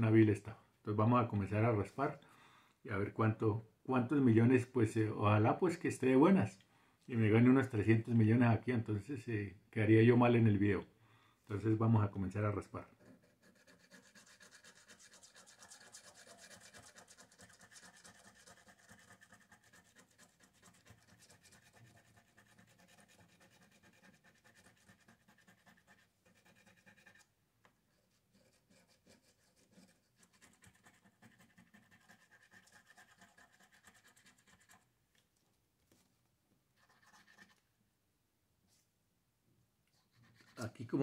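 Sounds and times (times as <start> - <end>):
coin scratching lottery ticket: 13.0 - 27.2.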